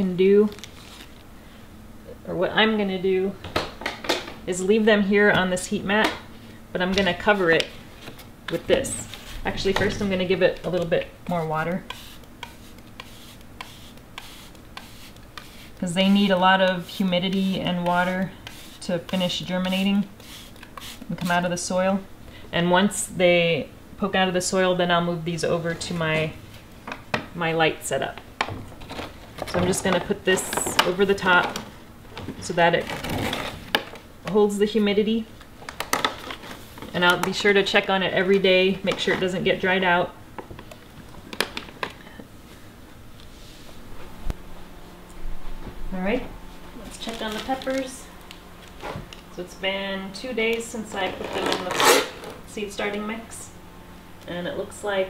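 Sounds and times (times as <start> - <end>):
blanket drawn over plastic: 51.1 - 52.3.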